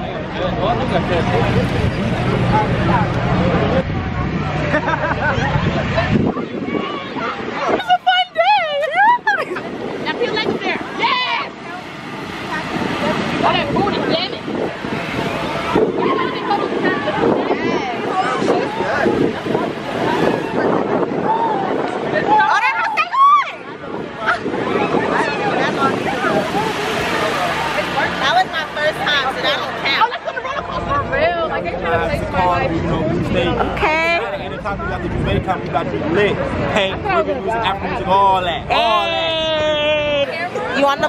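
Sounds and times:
crowd babble: 0.0 - 41.0
steady background noise: 0.0 - 41.0.

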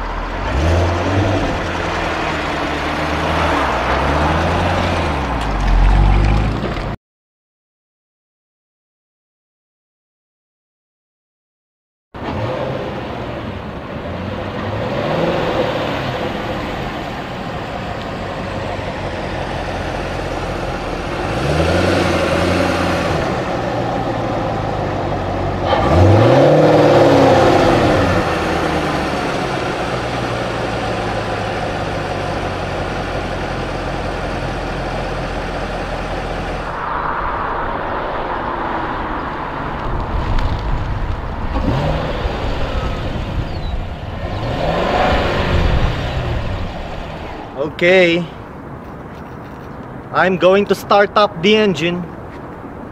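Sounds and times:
car engine accelerating: 0.0 - 7.0, 12.2 - 47.6.

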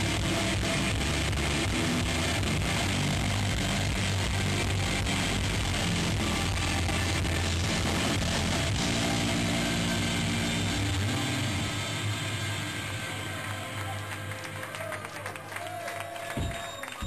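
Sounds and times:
distorted electric guitars: 0.0 - 14.6
bass guitar: 0.0 - 14.9.

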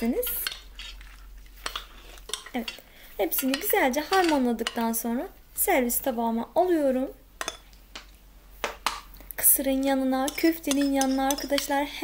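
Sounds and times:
metal spoon clinking on metal platter: 1.6 - 4.8, 10.2 - 11.9.

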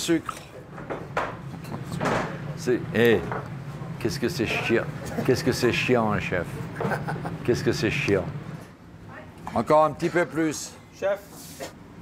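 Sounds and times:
steady low hum: 0.0 - 12.0
man talking: 4.0 - 6.5, 7.4 - 8.3.

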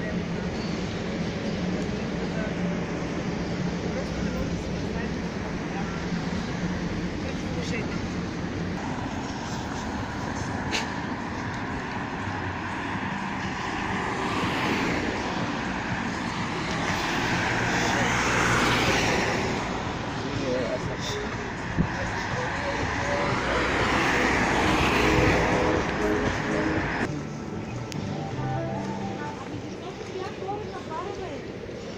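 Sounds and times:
cars passing by: 0.0 - 31.9
road traffic noise: 0.0 - 31.9.

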